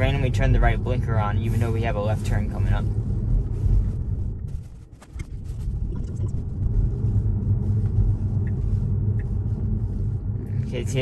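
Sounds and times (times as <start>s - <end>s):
road and tyre rumble: 0.0s - 11.0s.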